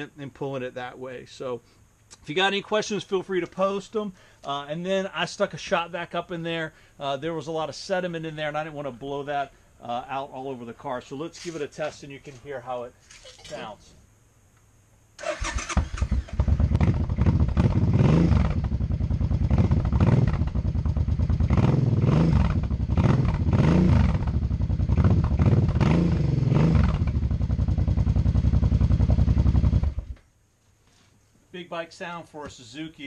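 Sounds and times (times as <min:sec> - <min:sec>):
motorcycle starter cranking: 0:15.2 - 0:17.7
motorcycle engine revving: 0:15.2 - 0:30.2.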